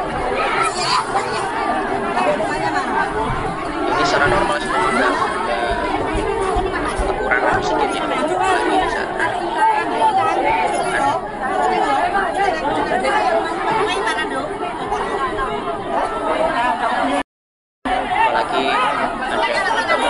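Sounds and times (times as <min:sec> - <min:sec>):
crowd talking: 0:00.0 - 0:17.3, 0:17.9 - 0:20.0.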